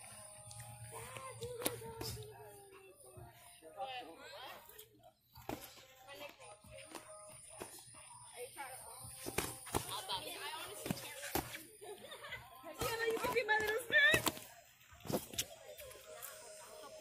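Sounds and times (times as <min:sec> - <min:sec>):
music: 0:00.0 - 0:17.0.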